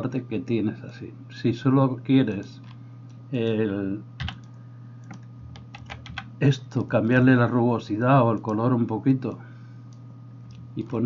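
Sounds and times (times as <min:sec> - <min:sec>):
steady low hum: 0:00.0 - 0:11.0
keyboard and mouse clicks: 0:04.2 - 0:06.3.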